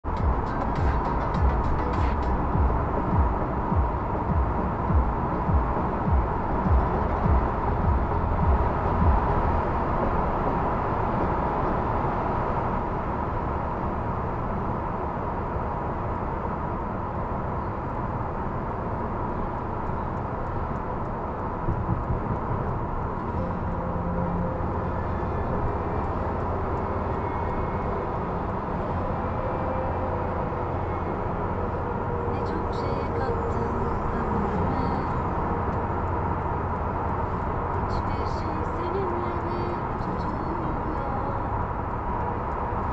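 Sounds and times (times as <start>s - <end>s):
road and engine noise: 0.0s - 42.9s
low thumping: 0.2s - 9.6s.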